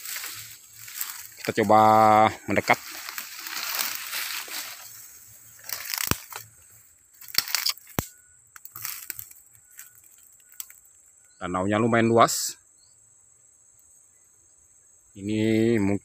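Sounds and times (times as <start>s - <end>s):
footsteps wading through mud: 0.0s - 6.4s
swamp plants rustling: 0.0s - 11.3s.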